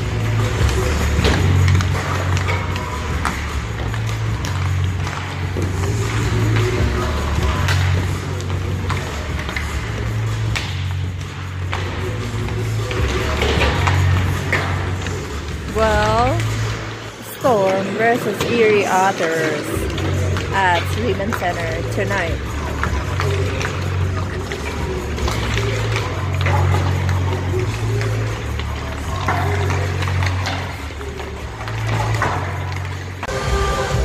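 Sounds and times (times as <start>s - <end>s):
hockey pucks and sticks clacking: 0.0s - 33.9s
person speaking: 15.7s - 16.6s, 17.2s - 22.4s
arena music with pulsing bass: 19.7s - 34.0s.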